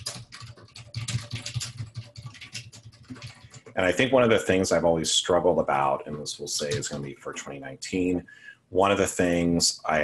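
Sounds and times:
fast typing on a keyboard: 0.0 - 3.9, 6.1 - 7.0.

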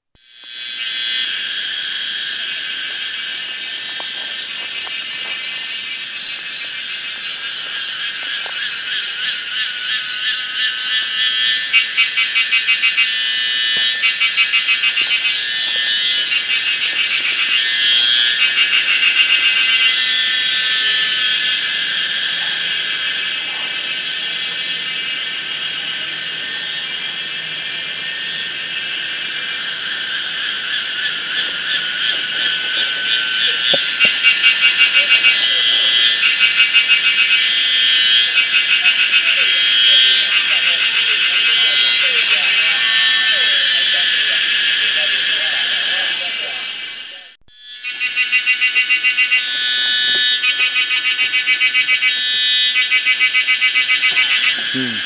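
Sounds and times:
cicadas buzzing: 0.2 - 55.0.

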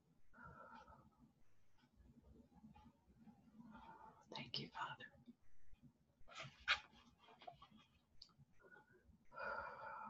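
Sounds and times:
soft whispering voice: 3.6 - 5.4.

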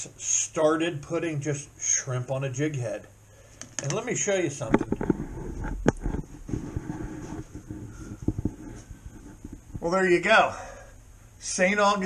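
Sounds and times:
camera handling rubbing: 4.8 - 9.7.

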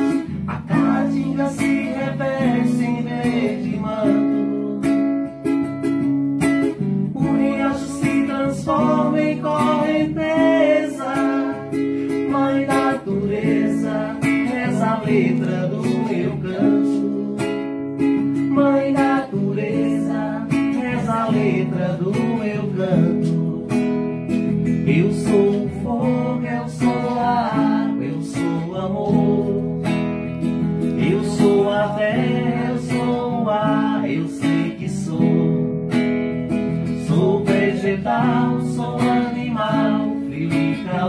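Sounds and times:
man singing into microphone: 0.0 - 5.3, 7.1 - 24.0, 24.7 - 30.0, 30.8 - 35.8, 36.8 - 41.0
acoustic guitar strumming: 0.0 - 41.0.

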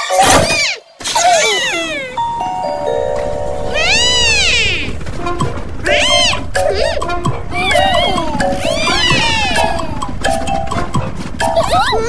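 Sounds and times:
background music: 1.9 - 12.0
cartoon character squeals: 3.8 - 4.9, 5.9 - 7.0, 7.6 - 9.9.

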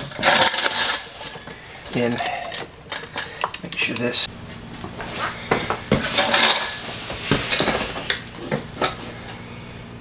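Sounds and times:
metal parts clinking on workbench: 0.0 - 4.1, 6.2 - 6.8.

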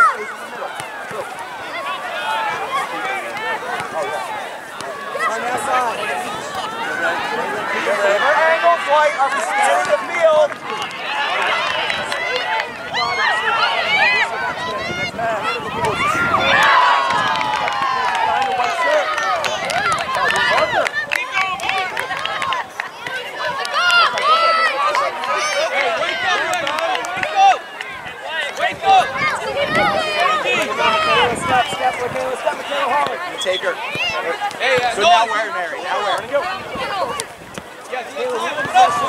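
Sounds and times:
crowd of voices shouting: 0.0 - 39.0.

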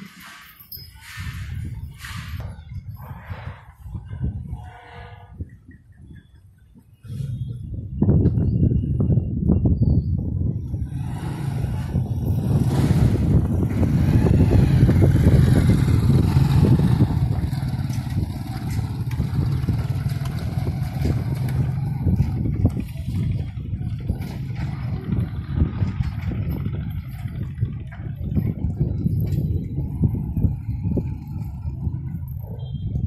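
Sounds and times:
vehicle engine rumbling: 0.0 - 33.0.

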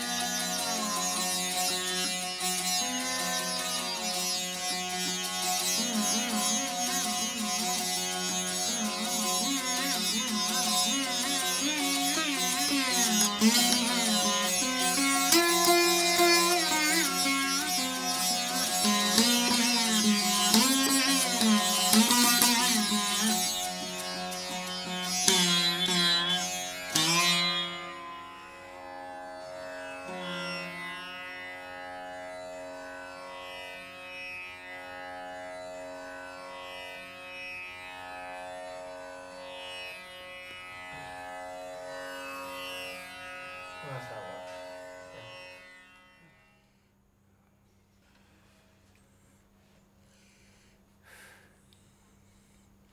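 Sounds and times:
plucked veena strings: 0.0 - 46.5
veena notes bending in pitch: 0.0 - 47.0.

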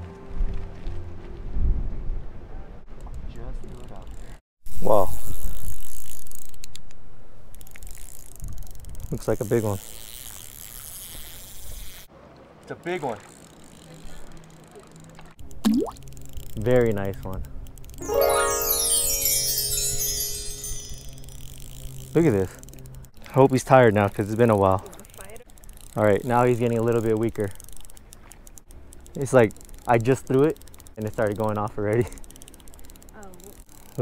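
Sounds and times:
fishing reel clicking: 7.5 - 12.1, 21.1 - 34.0
shimmering bell-like chime: 18.0 - 21.7.

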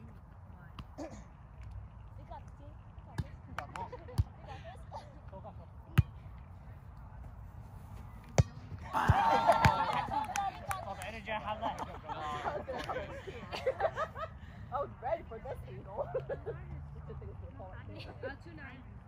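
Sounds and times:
players shouting: 8.8 - 10.6.

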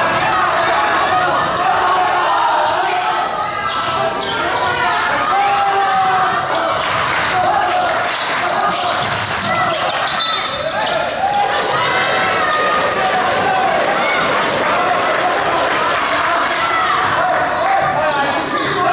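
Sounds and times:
echoing chatter of people: 0.0 - 18.9.

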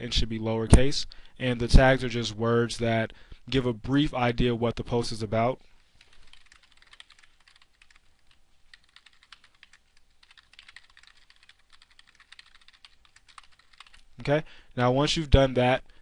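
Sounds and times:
keyboard typing: 6.0 - 14.1.

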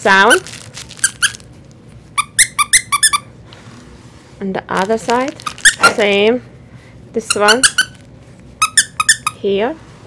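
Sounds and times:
toy squeaker squeaks: 1.0 - 1.4, 2.2 - 3.3, 5.4 - 6.0, 7.3 - 8.0, 8.6 - 9.4.

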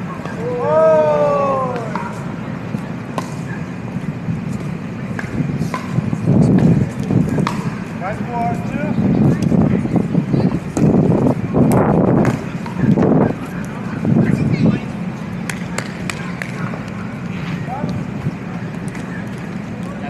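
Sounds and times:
people talking: 6.2 - 20.0.

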